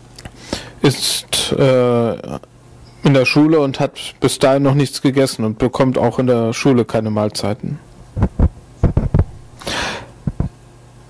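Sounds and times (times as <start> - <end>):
dull low thumps: 8.2 - 9.5, 10.2 - 10.5.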